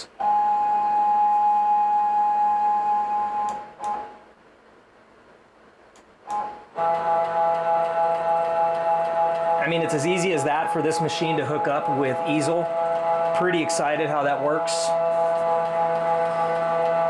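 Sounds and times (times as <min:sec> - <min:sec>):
stepper motors whining: 0:06.3 - 0:17.0.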